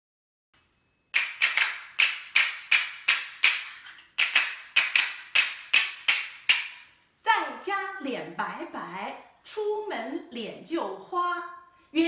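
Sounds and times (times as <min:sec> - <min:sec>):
hand cymbals clashing: 0:01.1 - 0:07.0.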